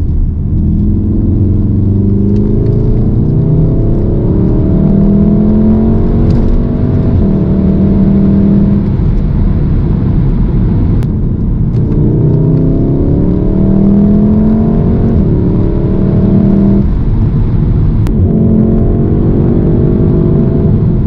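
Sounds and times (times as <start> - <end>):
car engine revving: 0.0 - 21.0
road noise: 0.0 - 21.0.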